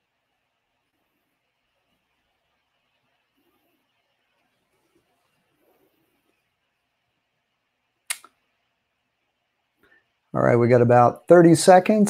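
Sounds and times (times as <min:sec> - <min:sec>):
sharp clicks: 0:08.1 - 0:08.4.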